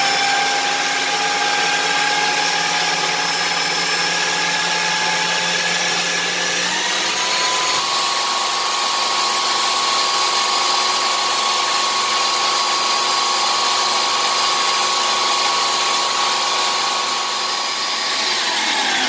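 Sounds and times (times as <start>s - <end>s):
food processor motor whining: 0.0s - 19.0s.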